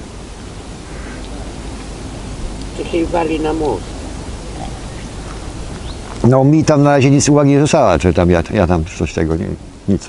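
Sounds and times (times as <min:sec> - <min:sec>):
rushing hiss: 0:00.0 - 0:10.0.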